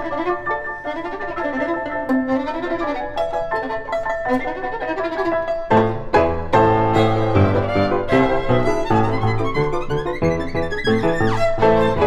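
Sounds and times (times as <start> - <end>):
piano chords: 0.0 - 12.0
violin melody with vibrato: 0.0 - 12.0.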